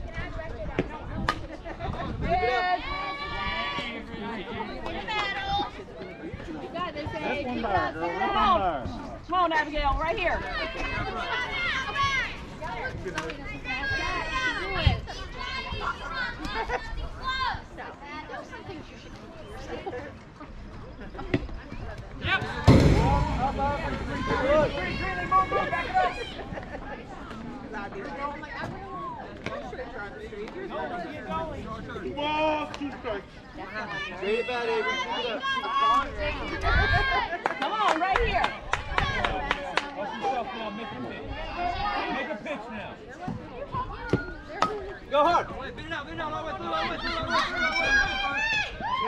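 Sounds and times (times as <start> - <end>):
people talking and calling out: 0.0 - 49.0
spectators shouting and cheering: 2.1 - 9.0, 10.1 - 17.8, 22.2 - 29.7, 33.7 - 42.4, 43.3 - 49.0.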